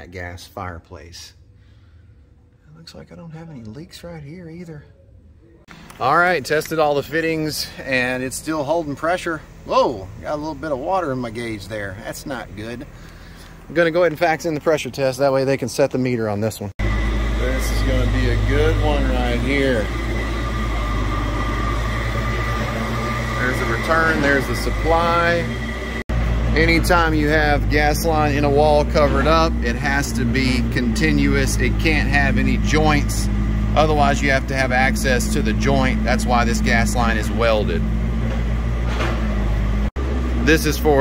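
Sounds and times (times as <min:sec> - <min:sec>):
low machine hum: 0:00.0 - 0:41.0
high whine: 0:16.8 - 0:41.0.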